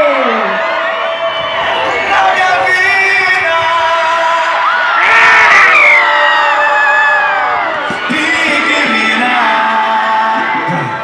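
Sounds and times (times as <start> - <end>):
crowd cheering and whooping: 0.0 - 11.0
live concert music over pa: 0.0 - 11.0.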